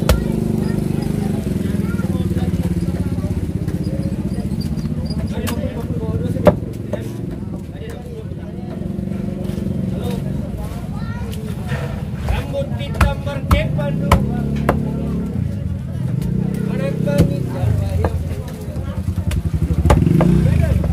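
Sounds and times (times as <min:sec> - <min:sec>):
machete chopping on wooden block: 0:12.9 - 0:15.0, 0:17.1 - 0:18.2, 0:19.3 - 0:20.4.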